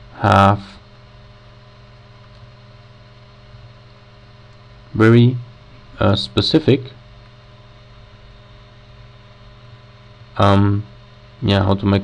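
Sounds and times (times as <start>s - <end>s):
faint recording hiss: 0.0s - 12.0s
low electrical hum: 0.0s - 12.0s.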